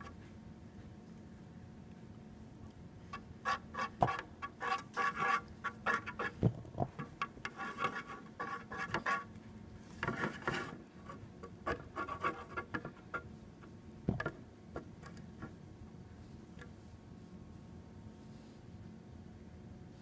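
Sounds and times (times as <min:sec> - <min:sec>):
stick scraping container bottom: 0:03.4 - 0:09.3, 0:10.0 - 0:13.2.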